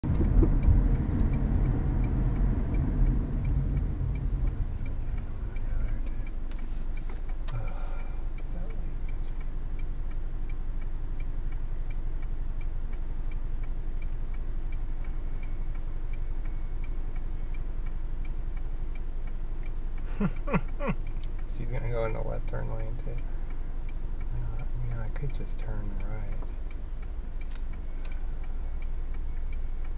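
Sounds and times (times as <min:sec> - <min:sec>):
car driving rumble: 0:00.0 - 0:29.9
car engine idling hum: 0:00.0 - 0:29.9
turn signal relay ticking: 0:00.0 - 0:29.9.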